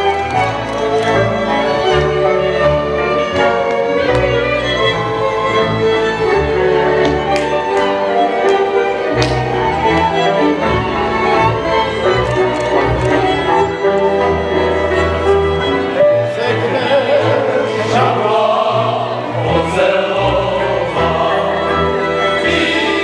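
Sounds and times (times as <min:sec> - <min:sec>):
folk band with violins and double bass: 0:00.0 - 0:23.0.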